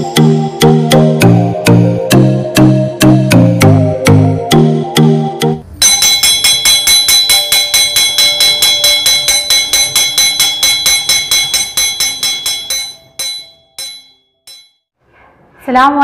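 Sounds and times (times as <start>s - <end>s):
iron school bell clanging: 5.8s - 14.8s.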